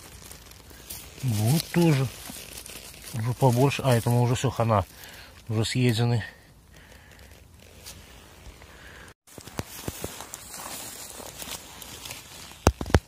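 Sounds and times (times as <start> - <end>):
rustling in dry leaves: 0.0 - 13.0.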